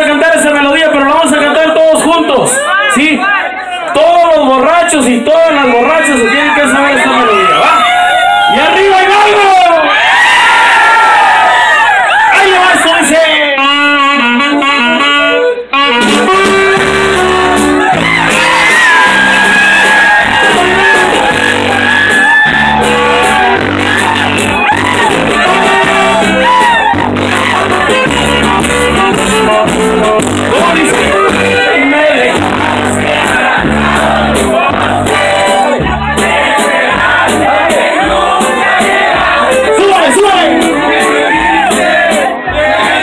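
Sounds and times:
band playing: 0:00.0 - 0:43.0
saxophone melody: 0:13.4 - 0:36.4, 0:37.0 - 0:43.0
bouncing bass: 0:13.6 - 0:43.0.

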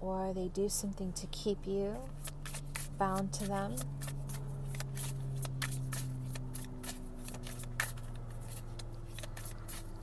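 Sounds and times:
low steady hum: 0:00.0 - 0:10.0
cards being shuffled: 0:02.0 - 0:10.0.

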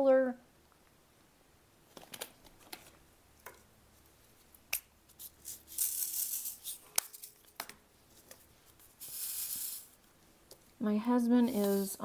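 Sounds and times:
resin beads rattling in plastic container: 0:05.3 - 0:07.4.

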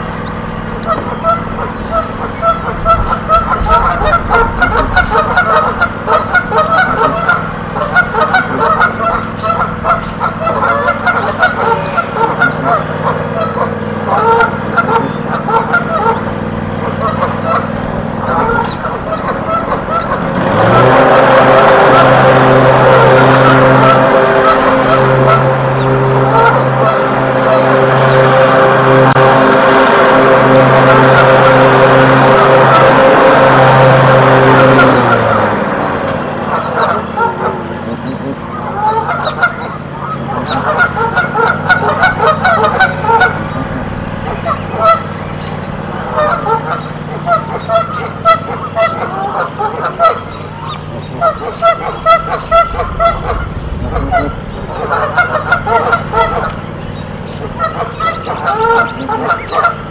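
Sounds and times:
geese honking: 0:00.0 - 0:59.9
loud steady droning hum: 0:00.0 - 0:59.9.

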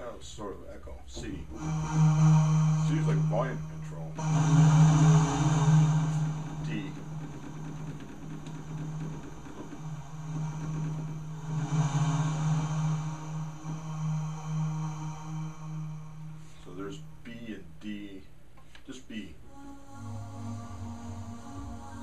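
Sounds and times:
synthesizer low drone: 0:00.9 - 0:18.3, 0:19.4 - 0:22.0
hissing synth noise: 0:01.2 - 0:18.0.

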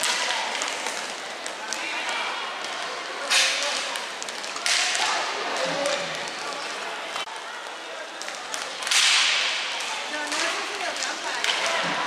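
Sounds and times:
light clicks of sticks and puck: 0:00.0 - 0:12.0
hockey stick cracking puck: 0:03.3 - 0:06.0, 0:08.2 - 0:12.0.

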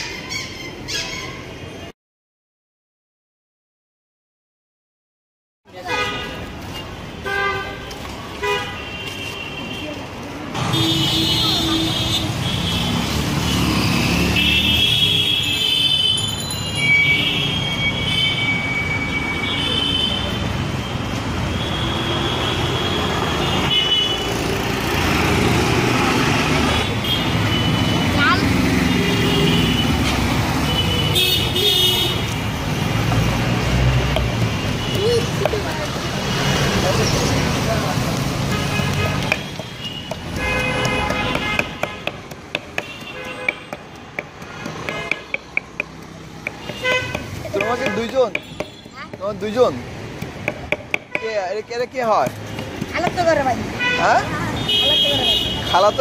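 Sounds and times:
city street traffic: 0:00.0 - 0:02.0, 0:05.6 - 0:56.0
car horn toots: 0:38.5 - 0:42.1.

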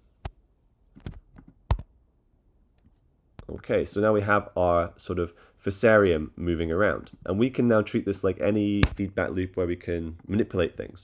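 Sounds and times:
keyboard and mouse clicks: 0:01.0 - 0:01.9.

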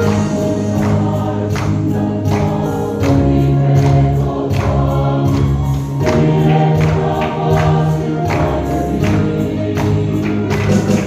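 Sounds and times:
choir singing a hymn: 0:00.0 - 0:11.0
percussion strikes: 0:00.0 - 0:11.0.

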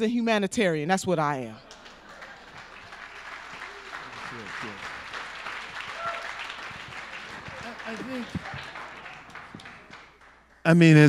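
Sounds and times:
audience applauding: 0:01.6 - 0:11.0.

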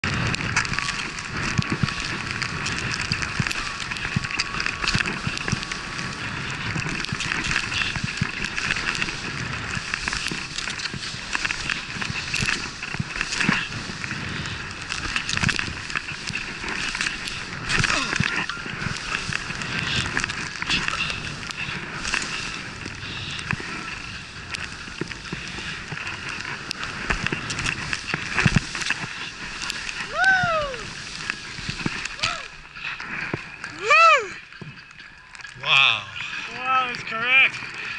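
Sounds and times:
skis hissing and scraping on snow: 0:00.0 - 0:34.6
skis and poles knocking: 0:00.0 - 0:37.9
wind on microphone: 0:00.0 - 0:37.9.

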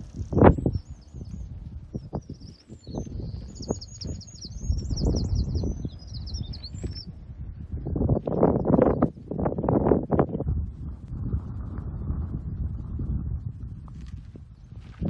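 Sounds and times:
songbird singing: 0:00.0 - 0:10.4
microphone handling noise: 0:00.0 - 0:15.0
wind rumble: 0:00.0 - 0:15.0.

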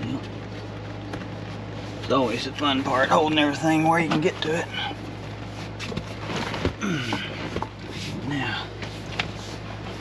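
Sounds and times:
rustling of seat cushion: 0:04.3 - 0:10.0.

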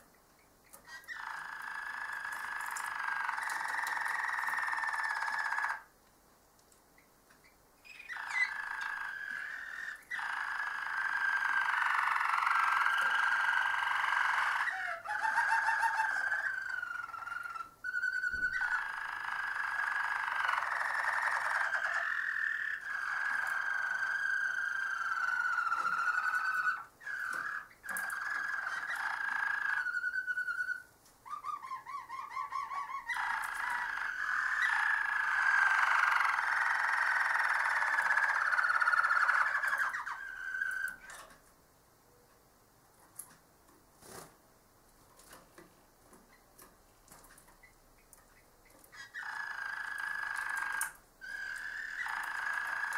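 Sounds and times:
canary singing: 0:00.0 - 0:05.9, 0:07.0 - 0:41.4, 0:46.3 - 0:52.9.

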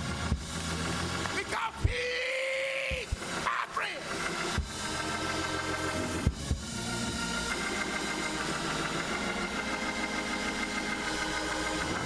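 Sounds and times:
organ holding sustained chords: 0:00.0 - 0:12.0.

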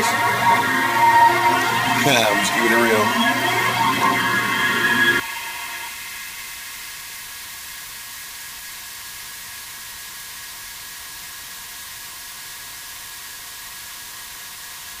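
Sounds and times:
faint high tones: 0:00.0 - 0:06.0
white noise hiss: 0:05.2 - 0:15.0.

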